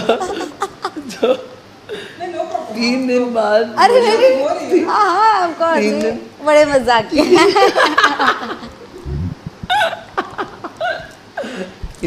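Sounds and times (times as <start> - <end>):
people laughing hard: 7.3 - 11.6.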